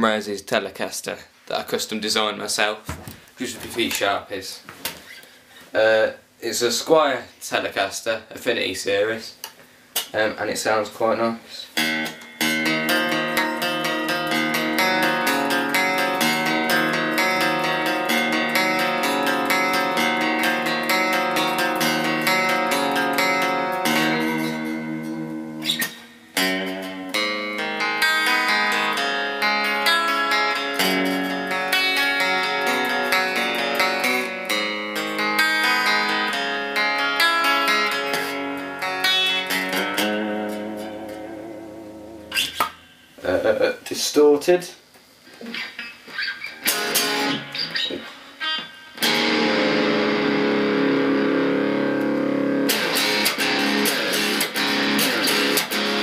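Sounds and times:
electric guitar playing: 11.7 - 43.3, 45.4 - 56.0.

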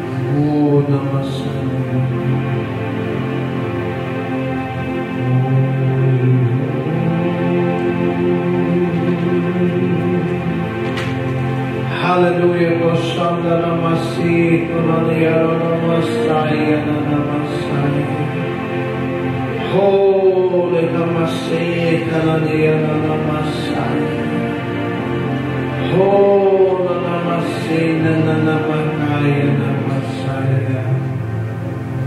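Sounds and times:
man singing chant-like song: 0.0 - 3.1, 4.8 - 11.2, 11.8 - 31.2
electronic keyboard chords: 0.0 - 32.0.

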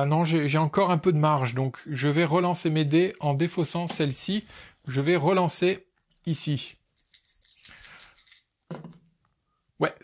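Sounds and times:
dice clattering in a tray: 7.0 - 8.9.

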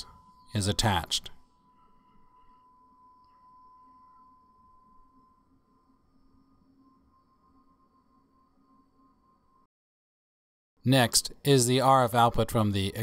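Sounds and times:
high-pitched hum: 0.0 - 9.7.

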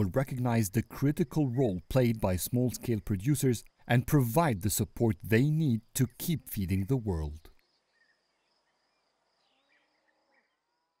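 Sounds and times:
faint bird chirps: 2.6 - 11.0
high insect buzz: 7.6 - 11.0.

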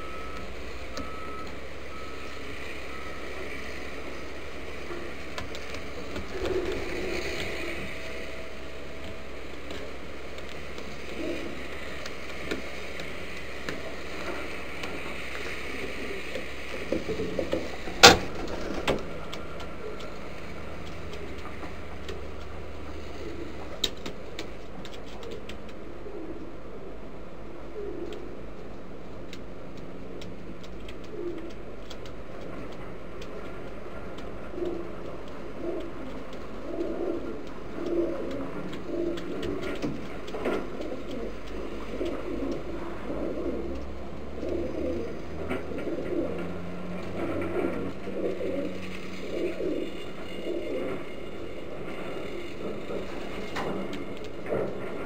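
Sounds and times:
steady low hum: 0.0 - 55.0
pigeons cooing: 2.9 - 22.5, 23.1 - 24.3, 25.2 - 27.0, 27.6 - 28.4, 30.9 - 55.0
faint clicks: 23.2 - 25.8, 28.0 - 28.3, 29.3 - 50.3.

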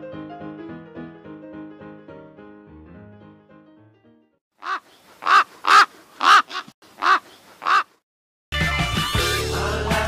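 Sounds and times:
music: 0.0 - 4.4, 8.5 - 10.0
raven cawing: 4.6 - 8.0.

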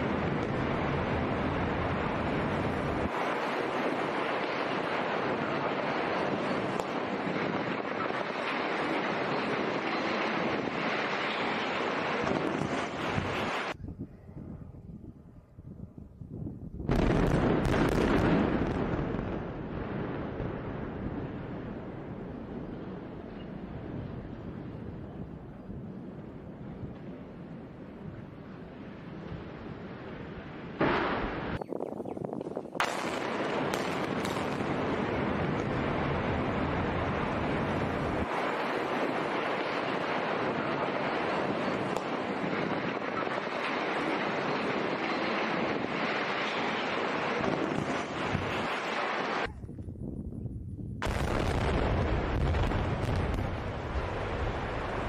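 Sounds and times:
explosive bangs: 16.8 - 23.2, 30.7 - 31.6, 32.8 - 49.5, 51.0 - 55.0.

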